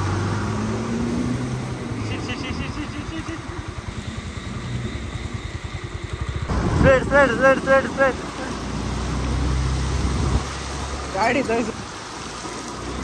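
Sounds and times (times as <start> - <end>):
person calling out loudly: 2.0 - 3.6.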